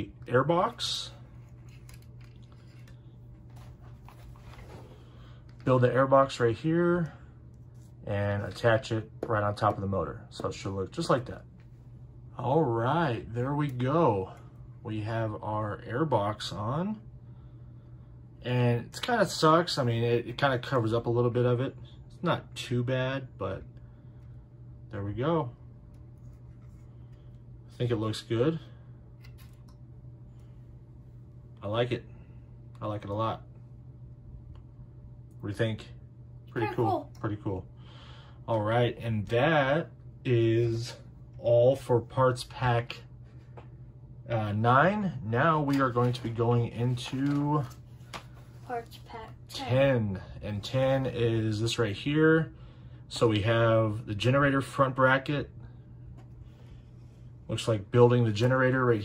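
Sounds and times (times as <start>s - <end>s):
low room hum: 0.0s - 59.0s.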